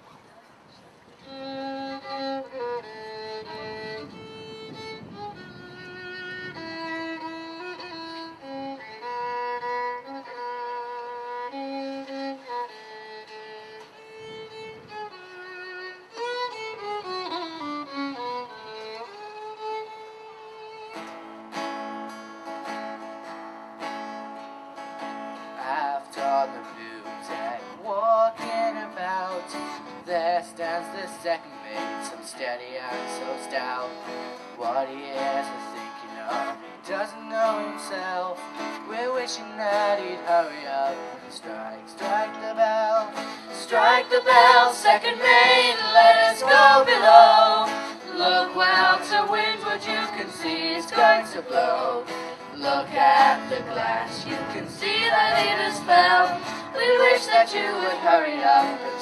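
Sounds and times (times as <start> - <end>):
fiddle melody: 1.2 - 59.0.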